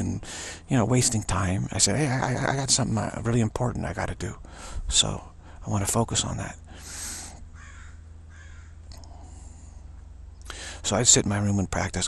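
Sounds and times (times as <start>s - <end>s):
steady low hum: 0.0s - 12.0s
faint bird calls: 6.8s - 10.7s.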